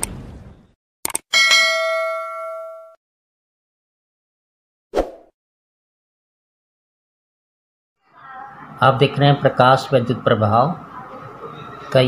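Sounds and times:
bright bell ding: 0:01.3 - 0:03.0.

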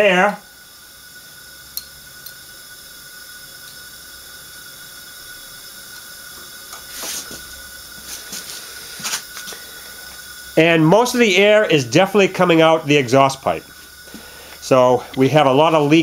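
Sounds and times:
compressed air hissing: 0:00.0 - 0:16.0.

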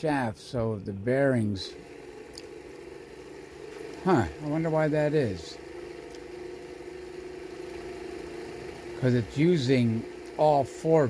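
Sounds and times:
pulse motor humming: 0:00.5 - 0:11.0.

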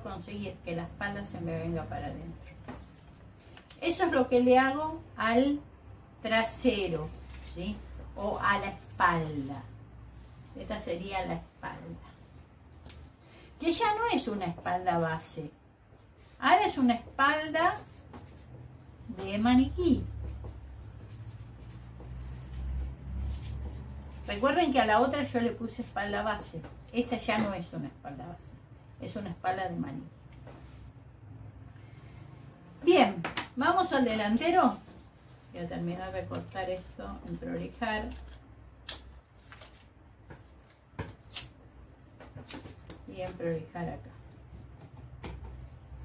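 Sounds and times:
marker pen scratching on paper: 0:14.4 - 0:26.5
scissors snipping paper: 0:37.9 - 0:39.8
paper rustling: 0:39.2 - 0:41.6.

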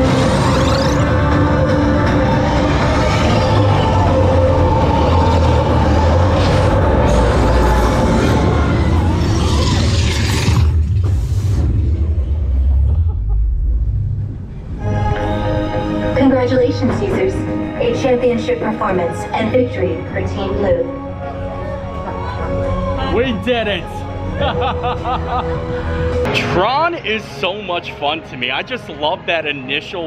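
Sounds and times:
electronic ride soundtrack: 0:00.0 - 0:10.0, 0:10.8 - 0:30.0
low rumble of roller coaster train: 0:10.8 - 0:23.2.

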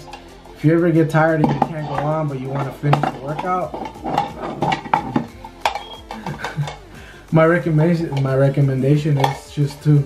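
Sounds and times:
utensil clinking against a plate: 0:01.0 - 0:10.0.

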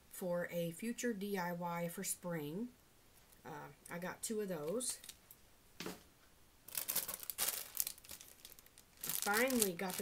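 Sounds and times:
plastic bag crinkling: 0:06.7 - 0:10.0.

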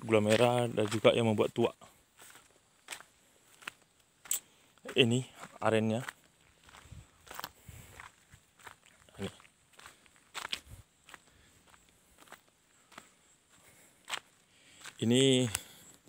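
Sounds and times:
footsteps on dirt path: 0:00.0 - 0:16.0.

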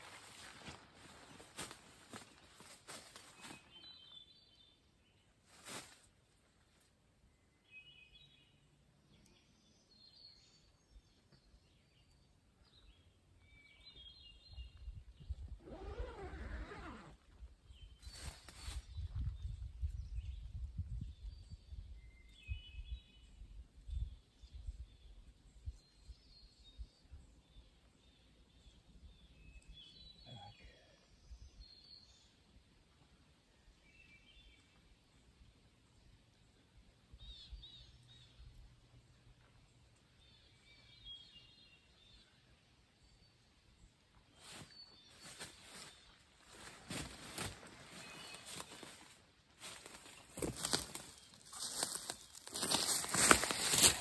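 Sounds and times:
songbirds singing: 0:02.1 - 0:05.4, 0:06.8 - 0:54.0.

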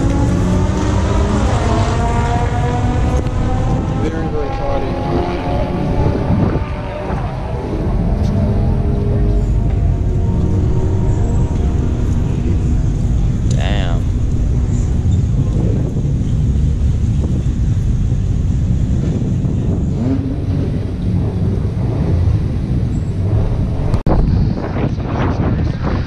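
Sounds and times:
car engines running: 0:00.0 - 0:26.0
wind on microphone: 0:00.0 - 0:26.0
people talking: 0:04.0 - 0:07.2, 0:08.8 - 0:14.1, 0:24.7 - 0:26.0.

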